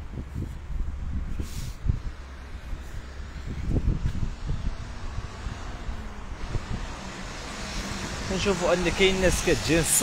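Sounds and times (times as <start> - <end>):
wind rumble on microphone: 0.0 - 10.0
distant traffic: 2.0 - 10.0.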